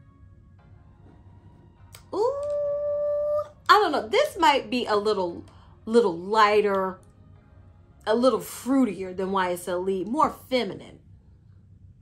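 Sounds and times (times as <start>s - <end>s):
woman humming mmm: 1.9s - 3.5s.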